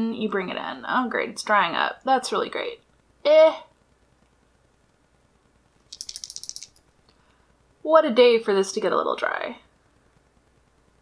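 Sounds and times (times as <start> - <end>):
eyeliner pen rattling: 5.9 - 6.8.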